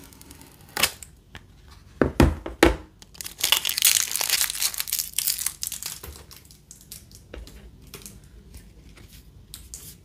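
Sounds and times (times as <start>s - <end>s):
plastic film crackle: 3.0s - 7.3s.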